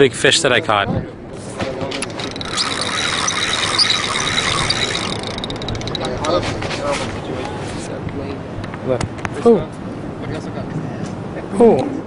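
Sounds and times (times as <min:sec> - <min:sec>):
fishing reel rapid clicking: 0:02.0 - 0:06.5
fishing reel whirring: 0:02.0 - 0:06.5.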